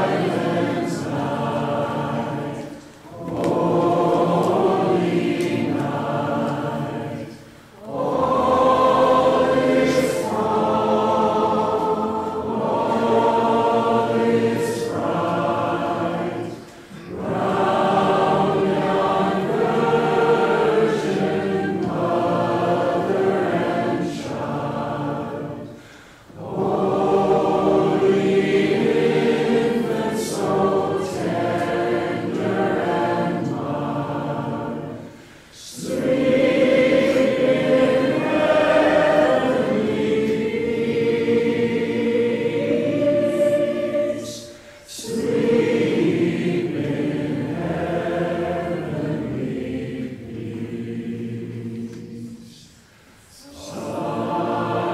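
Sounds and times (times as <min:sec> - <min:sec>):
voices singing a slow hymn: 0:00.0 - 0:54.9.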